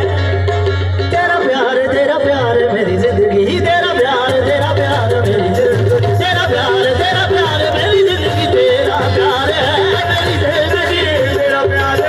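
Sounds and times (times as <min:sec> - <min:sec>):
harmonium: 0:00.0 - 0:12.0
tabla: 0:00.0 - 0:12.0
man singing: 0:01.0 - 0:12.0.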